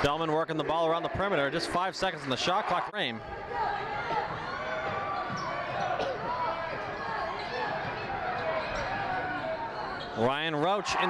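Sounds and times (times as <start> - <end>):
crowd noise and voices: 0.0 - 11.0.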